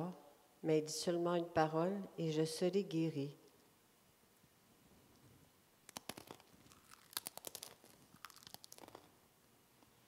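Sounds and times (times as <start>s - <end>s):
chewing crunches: 5.9s - 9.1s.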